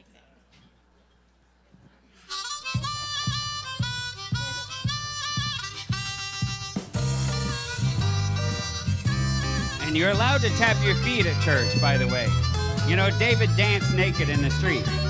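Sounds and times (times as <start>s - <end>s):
harmonica melody: 2.3s - 15.0s
band backing with bass and beat: 2.5s - 15.0s.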